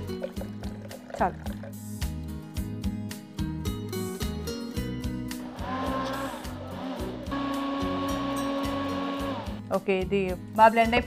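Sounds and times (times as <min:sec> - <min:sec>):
background music with steady beat: 0:00.0 - 0:11.0
hand blender motor whine: 0:05.4 - 0:09.6.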